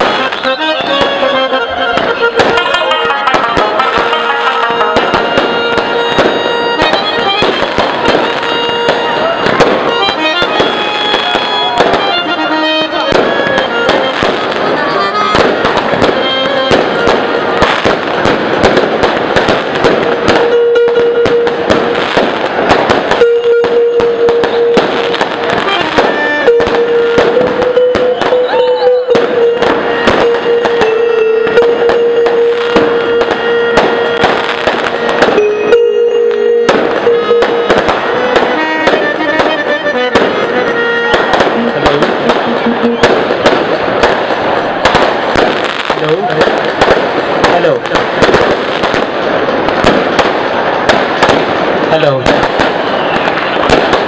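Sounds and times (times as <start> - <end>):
music: 0.0 - 18.2, 19.6 - 45.8
fireworks bursting and crackling: 0.0 - 54.0.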